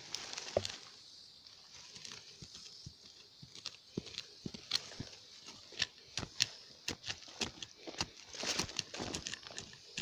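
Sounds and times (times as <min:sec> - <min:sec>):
digging tool scraping soil: 0:03.5 - 0:10.0.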